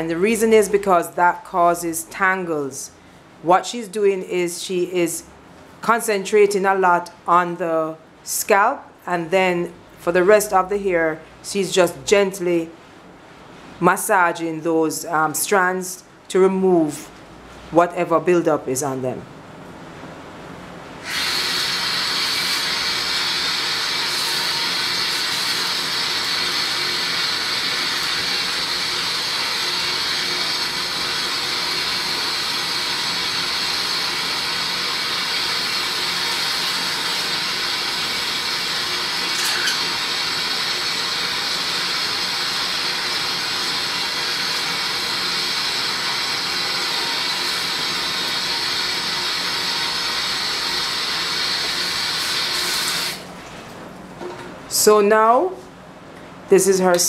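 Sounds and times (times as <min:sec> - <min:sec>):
tap water running into basin: 0:21.1 - 0:53.2.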